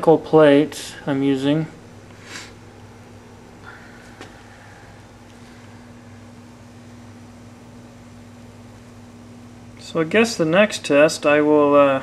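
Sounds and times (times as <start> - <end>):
faint hiss: 0.0 - 2.7
low electrical hum with tones: 0.0 - 12.0.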